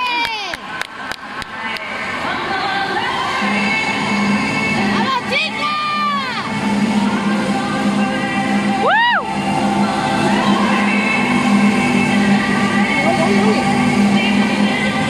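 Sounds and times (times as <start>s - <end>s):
music in a hall: 0.6s - 15.0s
spectators cheering: 8.8s - 9.4s.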